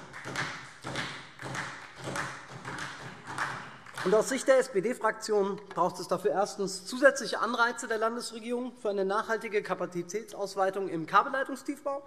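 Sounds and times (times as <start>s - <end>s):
people knocking on desks: 0.0s - 4.4s.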